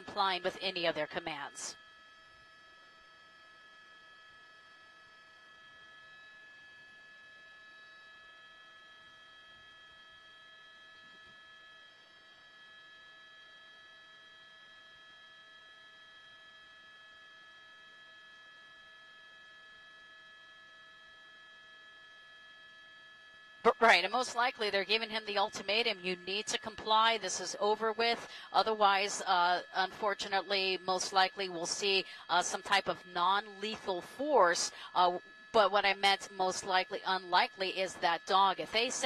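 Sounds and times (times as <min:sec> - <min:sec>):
high-pitched electronic hum: 0:00.0 - 0:39.0.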